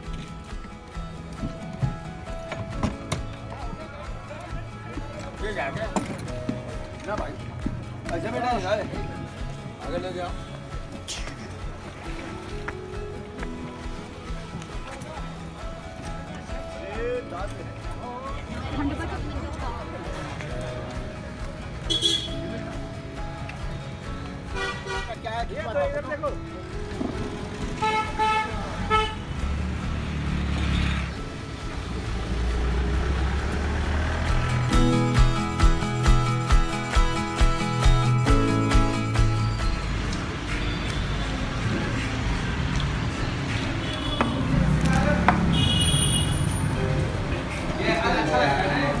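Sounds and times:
street noise: 0:00.0 - 0:49.0
vehicle horn toot: 0:21.9 - 0:22.4, 0:24.6 - 0:25.1, 0:27.8 - 0:29.2, 0:45.5 - 0:46.7.

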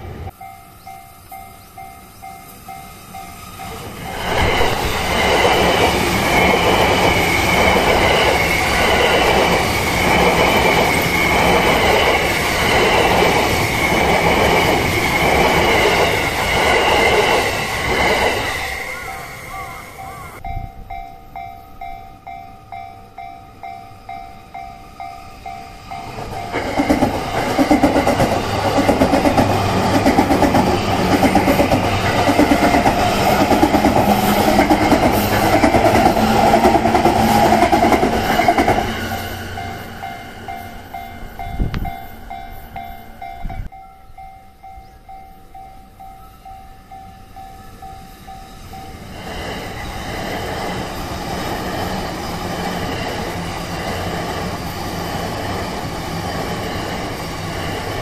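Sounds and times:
train wheels clattering: 0:02.2 - 0:18.8, 0:25.1 - 0:42.5
level crossing bell clanging: 0:18.6 - 0:36.9, 0:37.6 - 0:49.1.

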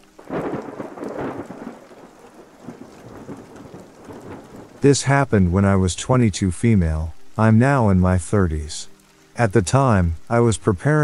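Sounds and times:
thunder rumbling: 0:00.0 - 0:06.0
steady rain: 0:00.0 - 0:11.0.

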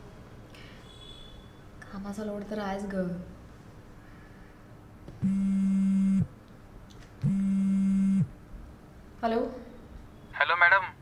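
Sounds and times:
phone buzzing on vibrate: 0:05.2 - 0:06.3, 0:07.2 - 0:08.3.

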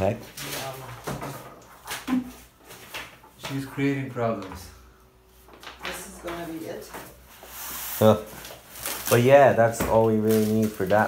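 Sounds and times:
voices in a room: 0:00.0 - 0:11.0.

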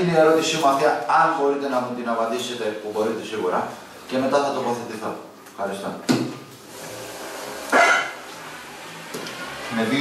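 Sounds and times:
people speaking: 0:00.0 - 0:06.0, 0:09.7 - 0:10.0.

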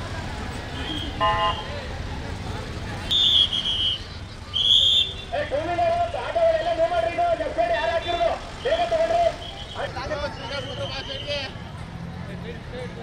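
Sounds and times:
crowd noise: 0:00.0 - 0:13.0
vehicle noise: 0:00.0 - 0:13.0
shrill whistle blasts: 0:03.1 - 0:05.2.

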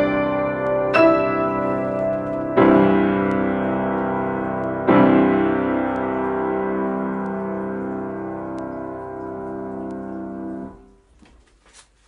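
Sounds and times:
grand piano chord: 0:00.0 - 0:10.9
sheet music rustling: 0:00.0 - 0:12.0.

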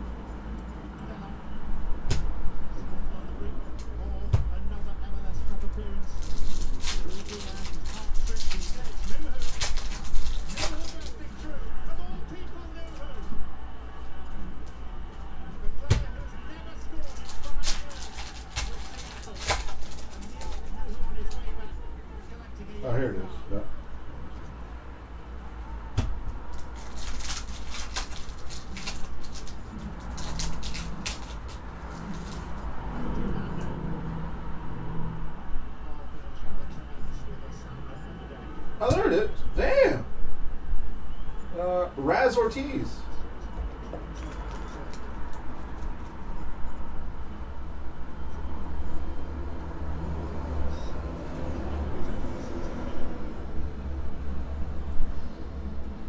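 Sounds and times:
foil packs crinkling: 0:06.1 - 0:11.5, 0:16.9 - 0:21.0, 0:26.5 - 0:32.6
pack wrapper tearing: 0:06.2 - 0:11.3, 0:17.0 - 0:20.7, 0:26.5 - 0:32.6.

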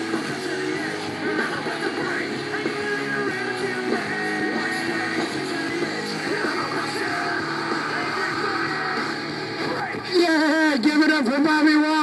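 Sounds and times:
rock music: 0:00.0 - 0:12.0.

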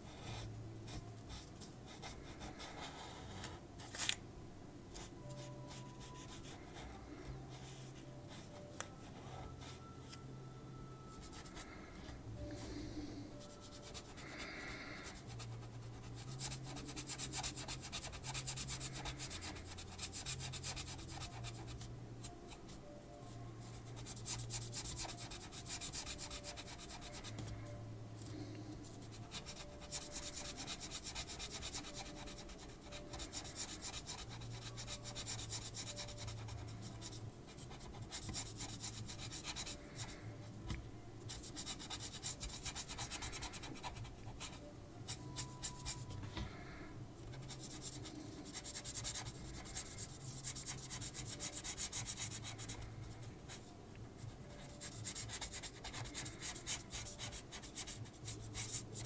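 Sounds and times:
marker rubbing on paper: 0:15.1 - 0:21.8, 0:23.8 - 0:27.3, 0:29.0 - 0:40.1, 0:41.3 - 0:46.1, 0:47.4 - 0:52.8, 0:54.8 - 0:59.0.

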